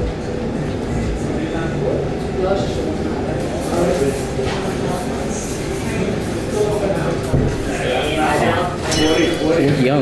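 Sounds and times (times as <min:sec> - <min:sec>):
diners talking: 0:04.3 - 0:10.0.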